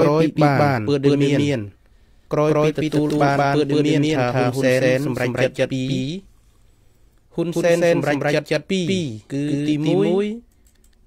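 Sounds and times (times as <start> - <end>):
man speaking: 0.0 - 6.3, 7.3 - 10.5.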